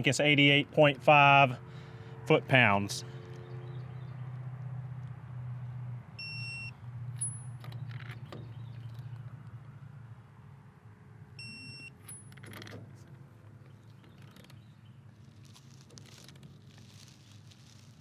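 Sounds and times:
torque wrench beeping: 6.2 - 7.6, 11.4 - 12.4.

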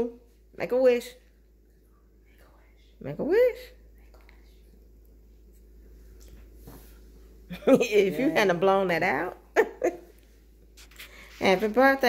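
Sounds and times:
faint whispering: 1.8 - 3.0.

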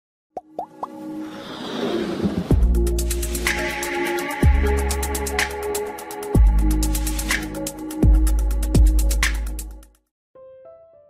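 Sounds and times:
swelling whoosh: 1.1 - 2.9.

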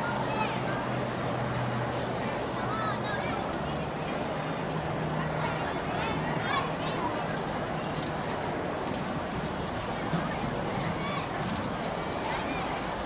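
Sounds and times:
faint distant voices: 0.0 - 13.0.

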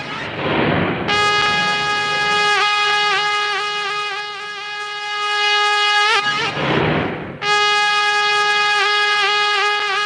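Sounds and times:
reedy wind instrument note: 1.1 - 6.6, 7.4 - 10.0.

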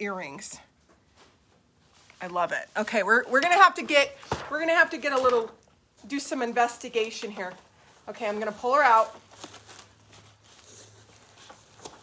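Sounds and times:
packaging rustling and crinkling: 8.7 - 12.0.

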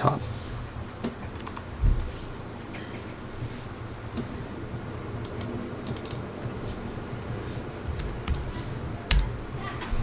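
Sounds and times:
keyboard typing clicks: 5.2 - 6.2, 7.9 - 9.4.

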